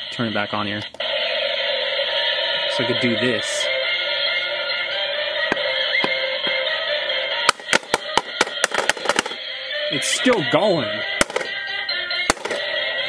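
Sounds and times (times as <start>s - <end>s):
tinny radio music: 0.0s - 13.0s
sharp cracks: 7.4s - 9.5s, 11.2s - 11.6s, 12.3s - 12.7s.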